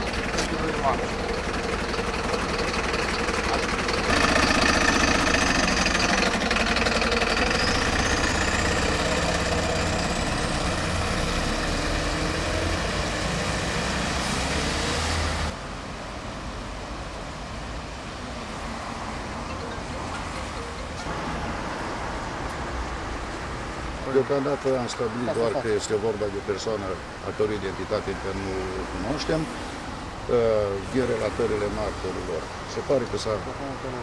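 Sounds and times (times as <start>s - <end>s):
vehicle engine running: 0.0s - 15.5s
street traffic noise: 0.0s - 34.0s.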